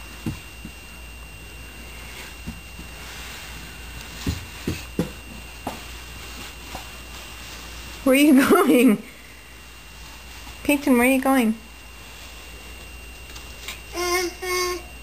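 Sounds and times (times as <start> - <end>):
wooden stool bumping on carpet: 4.2 - 5.9.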